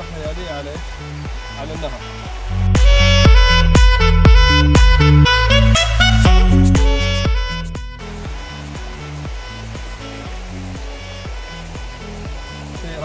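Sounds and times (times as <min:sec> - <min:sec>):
river flowing over stones: 0:00.0 - 0:02.9, 0:08.0 - 0:13.0
background music: 0:00.0 - 0:13.0.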